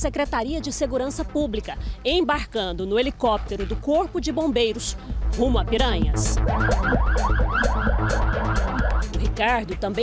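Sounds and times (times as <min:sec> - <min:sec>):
background music beat: 0:00.0 - 0:10.0
electronic siren yelp: 0:06.4 - 0:09.2.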